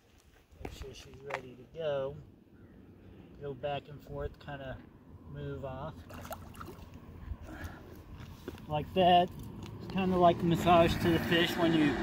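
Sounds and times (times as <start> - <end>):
water sloshing and splashing: 6.0 - 7.0.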